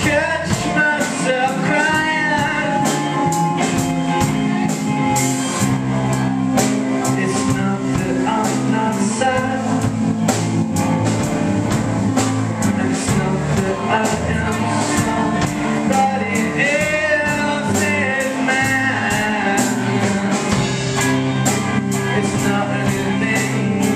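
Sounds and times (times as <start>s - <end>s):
drum kit steady beat: 0.0s - 23.9s
guitar lead with bending notes: 0.0s - 23.9s
live band playing: 0.0s - 23.9s.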